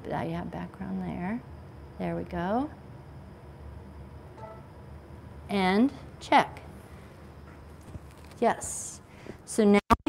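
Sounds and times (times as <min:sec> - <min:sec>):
low steady hum: 0:00.0 - 0:09.8
brief faint tone: 0:04.4 - 0:04.7.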